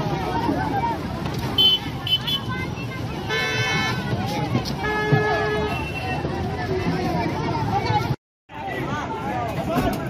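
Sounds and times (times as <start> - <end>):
crowd chatter: 0.0 - 10.0
vehicle horn honking: 1.6 - 2.5.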